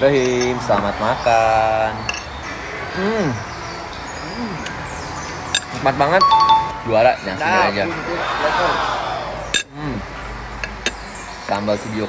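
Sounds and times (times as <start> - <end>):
man humming while eating: 4.2 - 4.8
man speaking: 6.1 - 8.6.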